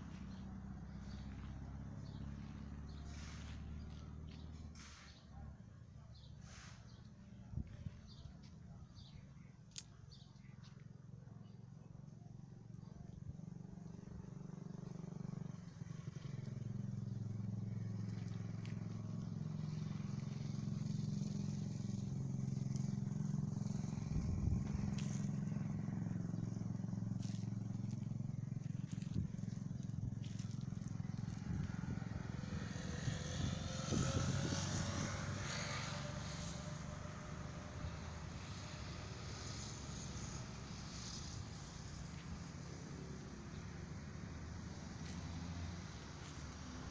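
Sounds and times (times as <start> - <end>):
vehicle engine humming: 0.0 - 6.2, 6.9 - 46.9.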